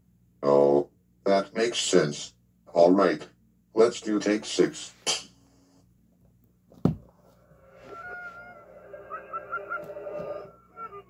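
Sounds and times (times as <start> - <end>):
reversed audio with gliding notes: 7.4 - 11.0.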